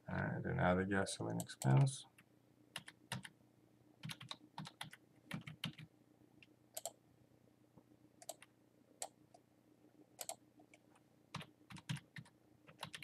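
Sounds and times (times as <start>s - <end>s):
computer keyboard typing: 2.8s - 3.3s, 4.0s - 5.9s, 8.2s - 9.1s, 10.2s - 10.4s, 11.3s - 13.0s.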